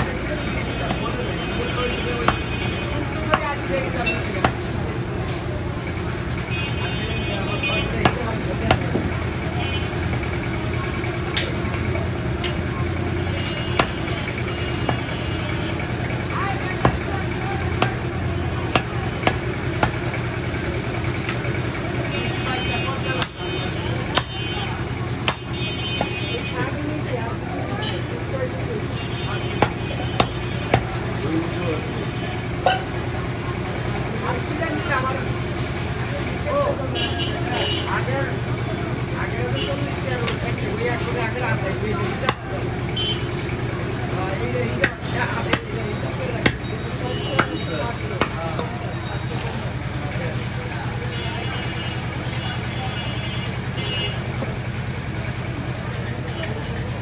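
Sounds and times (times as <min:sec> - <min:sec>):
murmur of voices: 0:00.0 - 0:57.0
cleaver chopping meat on wood: 0:04.4 - 0:04.6, 0:08.0 - 0:09.0, 0:13.8 - 0:14.1, 0:16.8 - 0:17.1, 0:17.7 - 0:20.1, 0:23.2 - 0:23.4, 0:25.2 - 0:26.1, 0:29.5 - 0:31.0, 0:42.2 - 0:42.4, 0:44.8 - 0:45.8, 0:46.4 - 0:46.7, 0:47.4 - 0:47.6.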